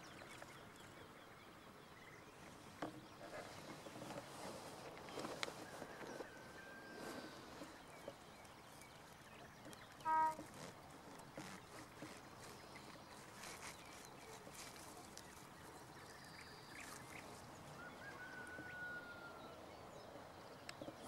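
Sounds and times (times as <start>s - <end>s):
grass rustling: 2.4s - 18.2s.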